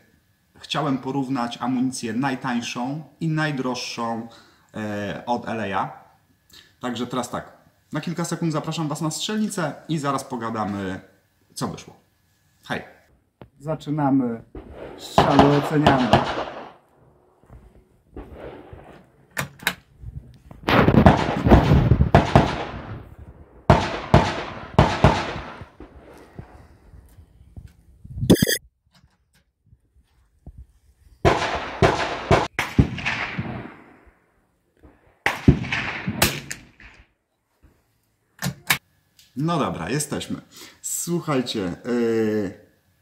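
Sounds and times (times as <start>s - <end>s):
rifle shots with echo: 14.6s - 16.8s, 18.2s - 19.0s, 20.7s - 22.9s, 23.6s - 26.1s, 31.3s - 33.9s, 35.2s - 37.0s.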